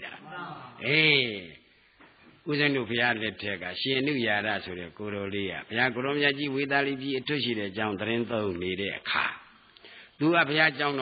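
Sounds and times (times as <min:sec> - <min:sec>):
man preaching: 0:00.0 - 0:01.6, 0:02.4 - 0:09.6, 0:10.2 - 0:11.0.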